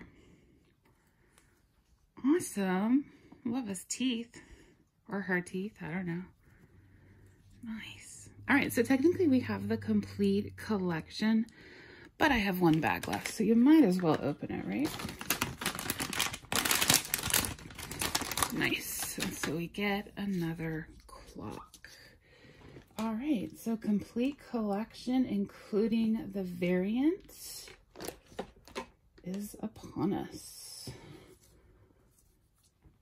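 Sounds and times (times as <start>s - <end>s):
plastic bag crackling and tearing: 12.3s - 19.5s.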